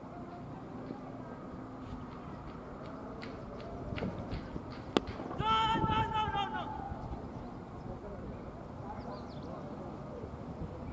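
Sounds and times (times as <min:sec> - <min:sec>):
cricket bat striking ball: 0:04.0 - 0:05.4
player shouting: 0:05.4 - 0:07.0.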